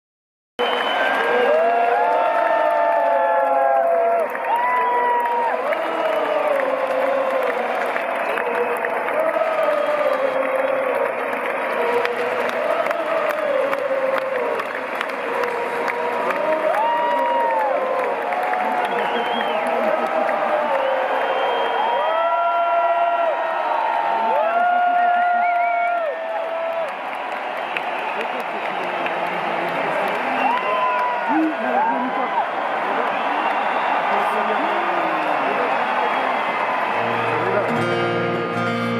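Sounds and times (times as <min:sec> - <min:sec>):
crowd cheering and applauding: 0:00.6 - 0:38.9
long drawn-out shouts: 0:01.0 - 0:27.7.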